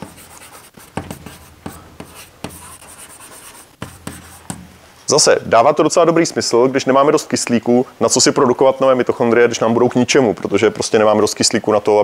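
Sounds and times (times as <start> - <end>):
chalk scratching on chalkboard: 0.0 - 4.6
chalk tapping on board: 0.0 - 4.8.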